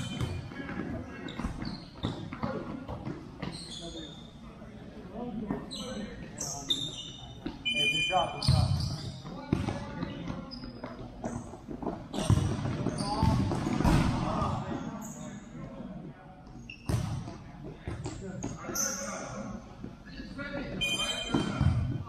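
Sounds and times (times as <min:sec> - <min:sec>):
sneakers squeaking on floor: 0:00.0 - 0:04.6, 0:05.2 - 0:15.6, 0:16.4 - 0:20.0, 0:20.6 - 0:22.0.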